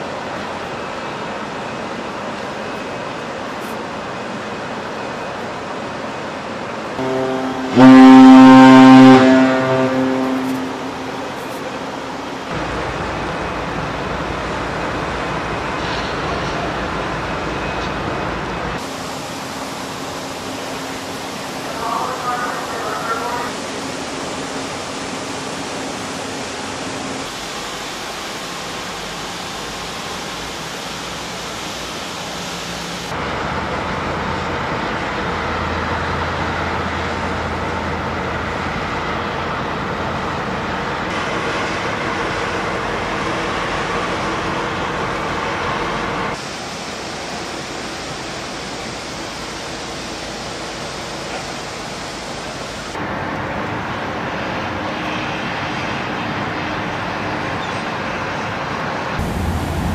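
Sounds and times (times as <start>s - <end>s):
steady rushing noise: 59.1s - 59.9s.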